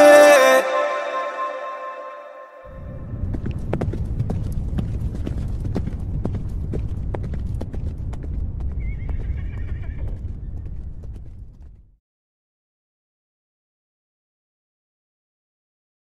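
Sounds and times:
short wavering high cry: 0.0s - 2.7s
low rumble: 2.7s - 12.0s.

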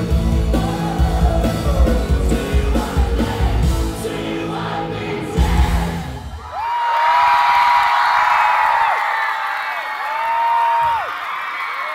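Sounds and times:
live rock band playing: 0.0s - 6.4s
crowd cheering and screaming: 4.4s - 11.9s.

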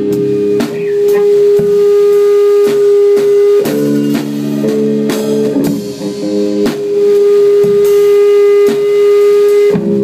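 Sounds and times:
electric guitar long note: 0.0s - 3.7s
drum hits: 0.0s - 6.0s.

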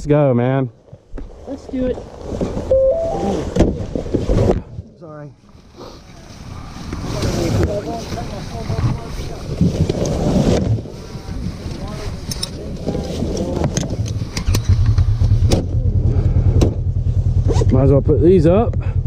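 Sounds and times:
engines rumbling and idling: 10.8s - 19.0s.

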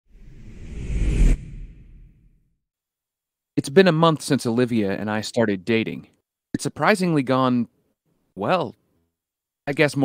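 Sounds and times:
whoosh sound effect: 0.1s - 2.4s.

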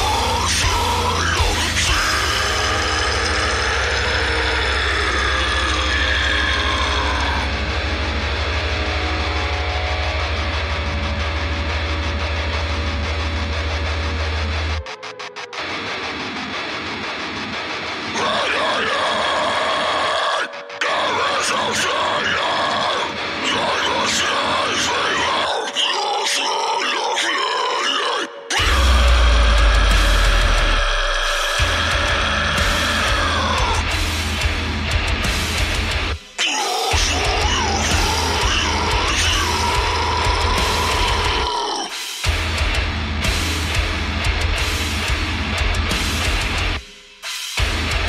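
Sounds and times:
growled metal vocals: 0.0s - 14.8s, 15.6s - 46.8s, 47.6s - 48.0s
metal bass: 0.0s - 14.8s, 28.6s - 36.3s, 36.9s - 46.9s, 47.6s - 48.0s
heavy metal music: 0.0s - 48.0s.

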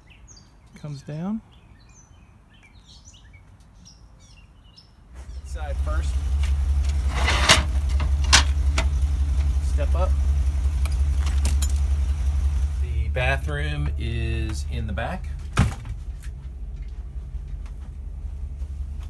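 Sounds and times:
steady low rumble: 5.2s - 19.0s
metal step clacks: 6.4s - 9.0s.

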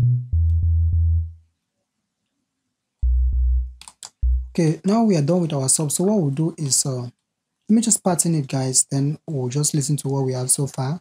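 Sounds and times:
sustained low synth bass notes: 0.0s - 1.4s, 3.0s - 4.6s.

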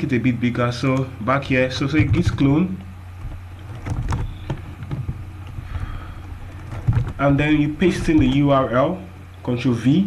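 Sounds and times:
low rumble and hum: 0.0s - 10.0s.

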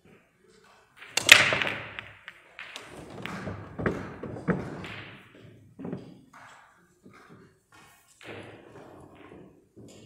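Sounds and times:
pool balls clattering: 0.7s - 10.0s
cue ball cracking into balls: 1.0s - 7.6s.

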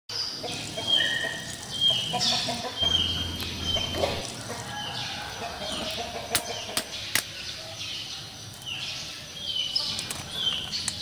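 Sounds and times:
birds calling: 0.1s - 11.0s
low hum: 2.8s - 6.0s.

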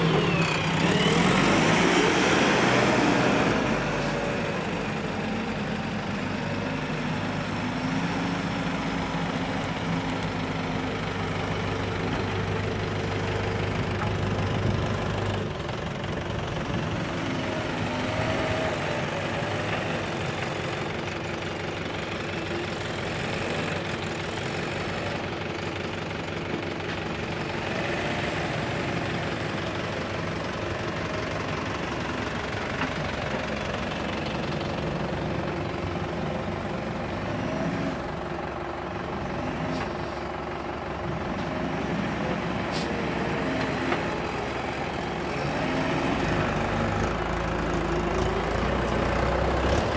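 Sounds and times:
diesel engine under load: 0.0s - 49.9s.

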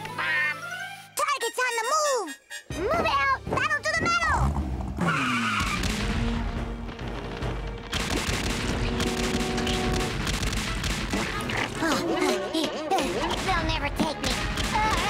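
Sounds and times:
background music: 0.0s - 15.0s
rapid rattle of gunfire: 7.9s - 11.3s, 13.3s - 15.0s.

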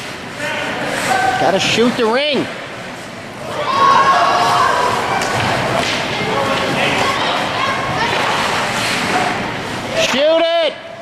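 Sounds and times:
distant voices: 0.2s - 10.2s.

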